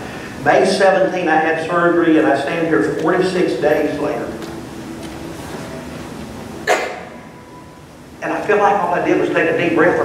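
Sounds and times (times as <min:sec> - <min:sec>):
person coughing: 0:06.6 - 0:07.2.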